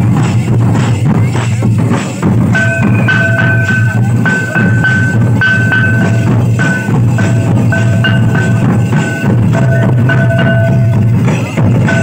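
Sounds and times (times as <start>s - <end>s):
barrel drums beaten with sticks: 0.0s - 12.0s
high held tone: 2.5s - 12.0s.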